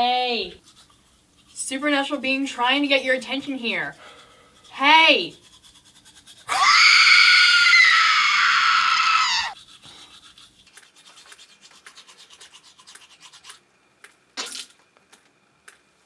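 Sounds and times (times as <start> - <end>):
toothbrush scrubbing teeth: 0.3 - 7.0, 9.5 - 13.7.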